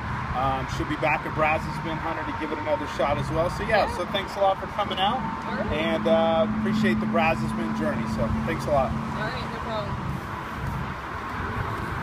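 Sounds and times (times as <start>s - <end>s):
outdoor background rumble: 0.0s - 12.0s.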